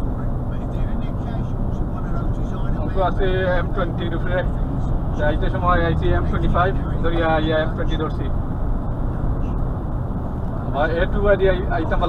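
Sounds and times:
engine and road rumble in cab: 0.0s - 12.0s.

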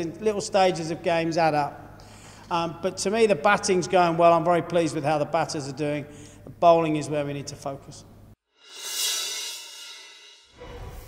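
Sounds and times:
bright cymbal-like whoosh: 8.6s - 11.0s.

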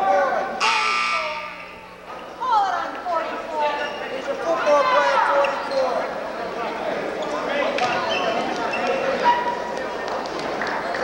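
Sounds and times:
voices in a gym: 0.0s - 11.0s
scoreboard horn buzz: 0.6s - 2.0s.

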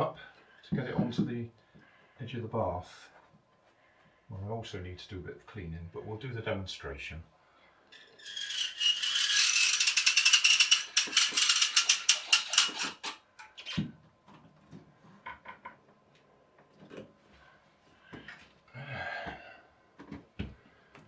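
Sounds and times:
metal ratchet-like grating: 8.0s - 13.6s.

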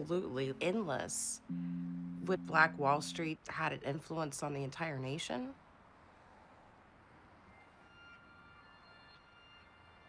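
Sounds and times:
faint high steady tones: 0.8s - 3.4s.

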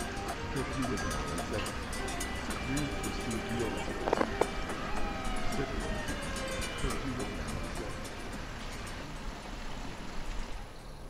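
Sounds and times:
noisy rumble with hiss: 0.0s - 11.0s.

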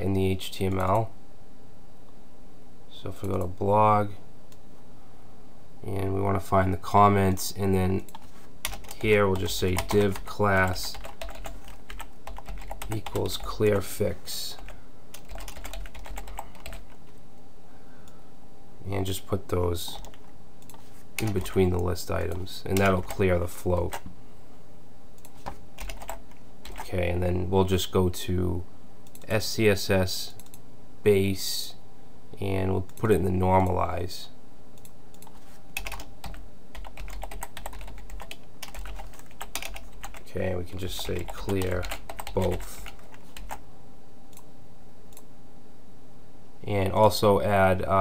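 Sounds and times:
typing on a computer keyboard: 8.0s - 13.5s, 14.6s - 17.1s, 19.9s - 21.6s, 25.3s - 26.9s, 35.2s - 40.2s, 41.0s - 43.6s.

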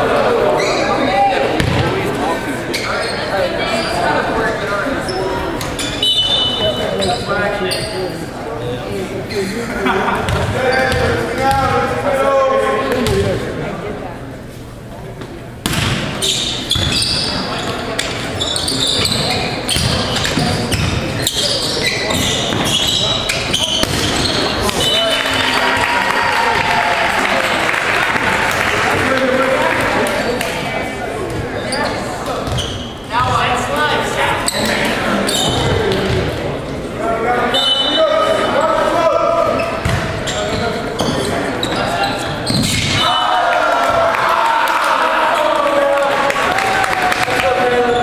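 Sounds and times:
sneakers squeaking: 0.4s - 8.4s, 9.2s - 11.8s, 15.1s - 25.8s, 31.2s - 36.6s, 37.3s - 43.2s
people shouting in a gym: 42.6s - 48.0s.

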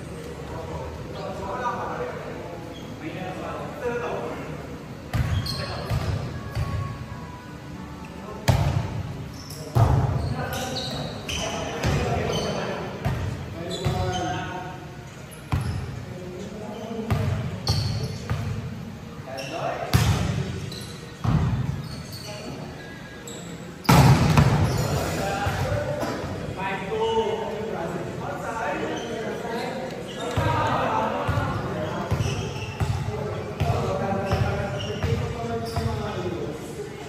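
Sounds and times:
volleyball being struck: 23.9s - 24.7s.

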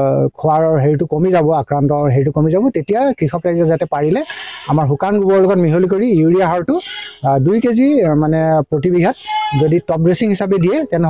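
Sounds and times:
man speaking: 0.0s - 11.0s
short high-pitched call: 9.1s - 9.8s.

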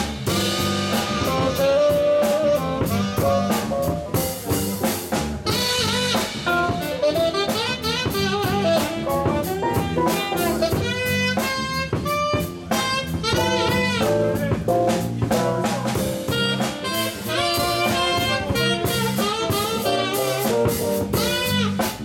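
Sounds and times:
drum kit beat: 0.0s - 22.0s
electric bass guitar: 0.0s - 22.0s
saxophone melody: 0.2s - 22.0s.

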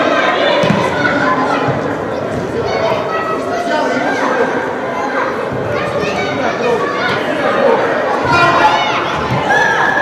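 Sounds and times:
young voices calling and shouting: 0.0s - 10.0s.

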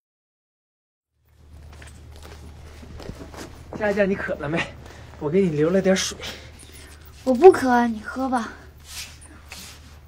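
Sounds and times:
low background noise: 1.2s - 10.0s
person speaking: 3.7s - 8.8s.

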